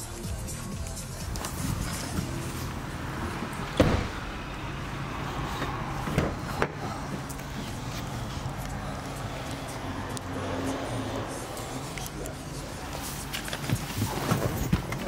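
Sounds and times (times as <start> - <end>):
background music: 0.0 - 4.3
car door shutting thump: 3.8 - 4.2.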